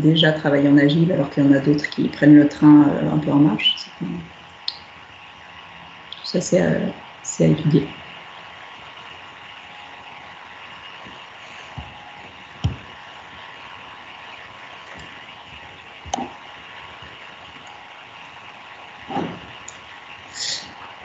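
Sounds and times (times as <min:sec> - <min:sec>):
faint hum tones: 0:00.0 - 0:21.0
microphone line hiss: 0:00.0 - 0:21.0.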